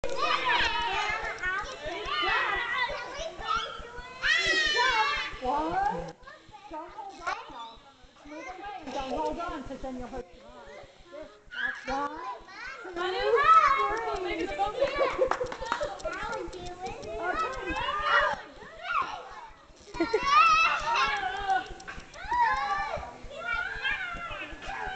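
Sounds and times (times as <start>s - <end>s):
young children shouting and chattering: 0.0s - 24.9s.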